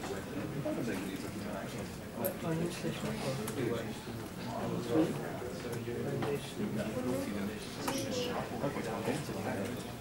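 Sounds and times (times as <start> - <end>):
people talking quietly: 0.0 - 10.0.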